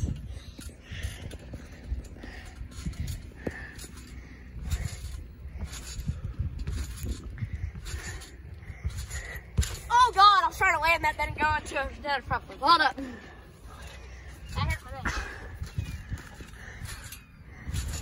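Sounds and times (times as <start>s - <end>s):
trampoline thumping and creaking: 0.0s - 18.0s
heavy landing thump: 8.9s - 9.9s
boy's voice: 9.8s - 13.2s, 14.6s - 15.4s.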